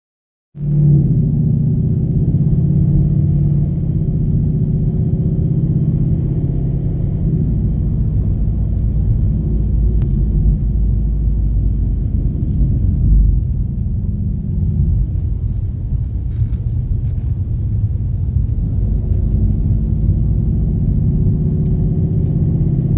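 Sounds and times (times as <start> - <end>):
car engine droning inside car: 0.6 - 22.9
low rumble of road noise: 0.6 - 22.9.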